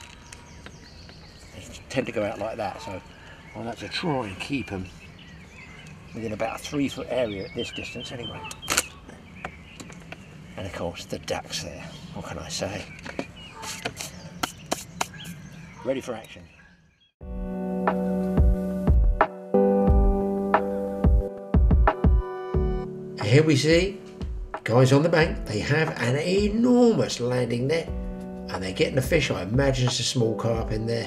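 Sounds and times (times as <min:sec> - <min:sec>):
faint open-air background: 0:00.0 - 0:31.0.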